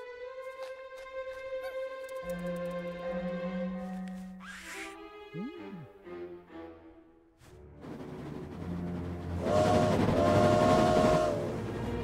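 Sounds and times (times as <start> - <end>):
train wheels on track: 7.8 - 12.0
train horn blasts: 9.3 - 12.0.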